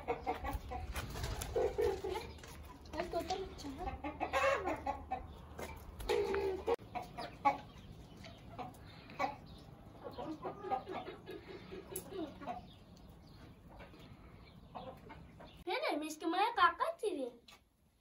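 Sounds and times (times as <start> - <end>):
chickens clucking: 0.0 - 15.7.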